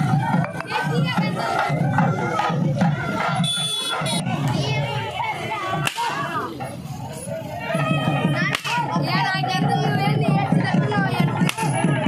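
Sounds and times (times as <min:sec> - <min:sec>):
crowd of men shouting and cheering: 0:00.0 - 0:12.0
steady beat: 0:00.0 - 0:12.0
sharp crack: 0:05.8 - 0:06.3.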